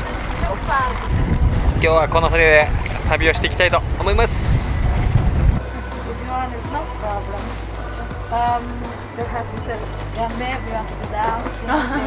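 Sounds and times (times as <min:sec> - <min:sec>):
voices speaking: 0:00.0 - 0:05.0, 0:05.6 - 0:12.0
wind on microphone: 0:00.0 - 0:06.2
boat noise: 0:00.0 - 0:12.0.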